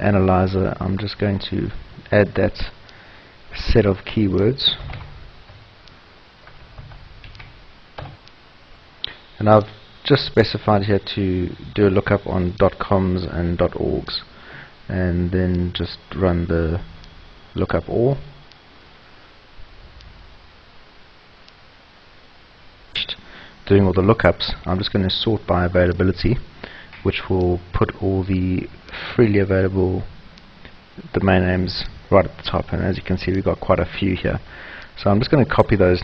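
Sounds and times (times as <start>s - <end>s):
low steady hiss: 0.0s - 36.0s
computer mouse clicks: 5.8s - 8.4s.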